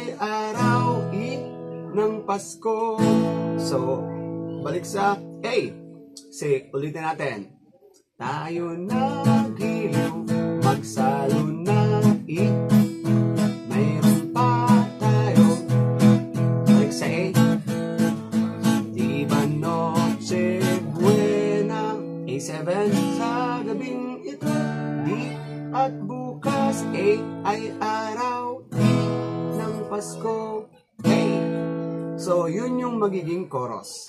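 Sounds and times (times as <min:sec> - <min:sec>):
man singing: 0:00.0 - 0:05.8, 0:08.2 - 0:31.6, 0:32.2 - 0:34.0
acoustic guitar strumming: 0:00.0 - 0:07.4, 0:08.2 - 0:34.0.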